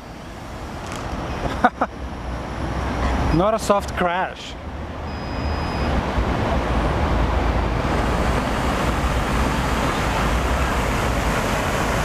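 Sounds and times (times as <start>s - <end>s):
quadcopter motors and propellers: 7.8s - 12.0s.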